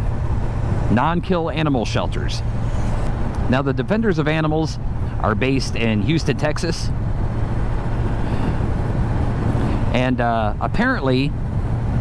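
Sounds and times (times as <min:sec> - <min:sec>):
motorcycle engine cruising: 0:00.0 - 0:12.0
wind and road noise: 0:00.0 - 0:12.0.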